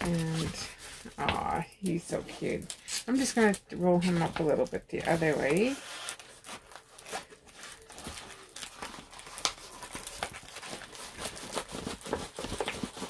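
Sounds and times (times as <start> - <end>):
canvas crinkling and rustling: 0.0 - 13.0.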